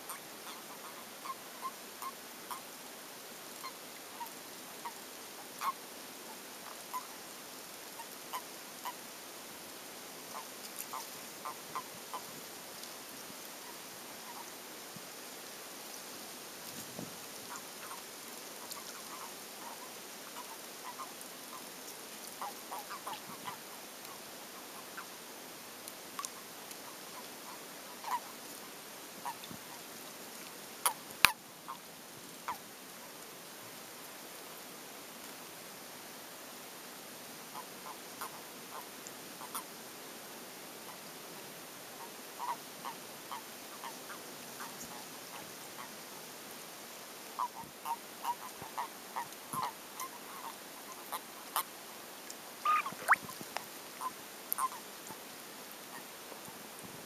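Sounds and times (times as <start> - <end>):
toads croaking: 0.0 - 2.7, 3.6 - 5.8, 6.6 - 7.1, 7.9 - 9.0, 10.3 - 12.3, 17.5 - 21.7, 22.4 - 25.1, 26.2 - 28.4, 37.5 - 39.7, 42.0 - 46.0, 47.4 - 51.8, 52.6 - 55.2
steady hiss: 0.0 - 57.0.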